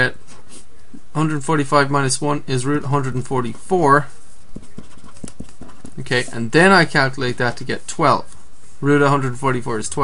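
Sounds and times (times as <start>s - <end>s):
low background noise: 0.0s - 10.0s
pen tapping on surface: 4.6s - 6.0s.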